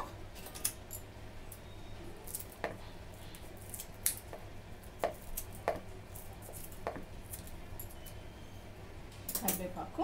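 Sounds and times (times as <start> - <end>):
scissors snipping leaves: 2.3 - 4.4.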